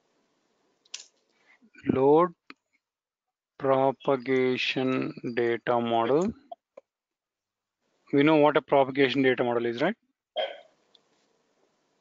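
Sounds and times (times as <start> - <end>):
person throat noise: 10.4 - 10.7.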